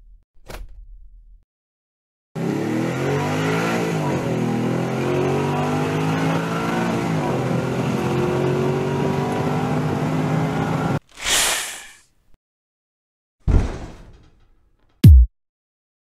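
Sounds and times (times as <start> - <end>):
truck engine revving: 2.4 - 11.0.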